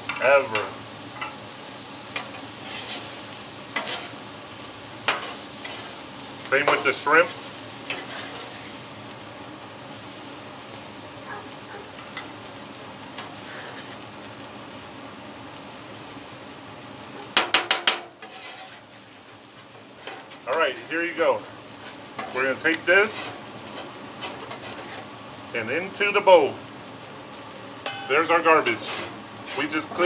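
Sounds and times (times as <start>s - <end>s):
seafood sizzling on griddle: 0.0s - 30.0s.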